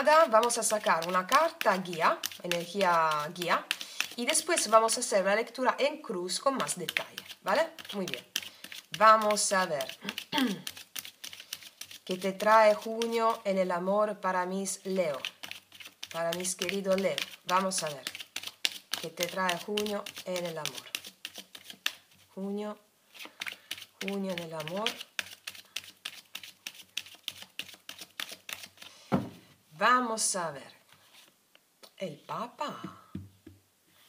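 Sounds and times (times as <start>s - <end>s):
cards shuffling: 0.0s - 4.7s, 6.6s - 13.4s, 15.1s - 22.2s, 23.1s - 29.4s.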